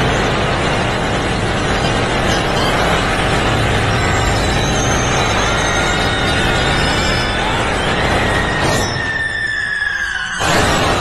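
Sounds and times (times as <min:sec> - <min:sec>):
loud dense rumbling: 0:00.0 - 0:08.8.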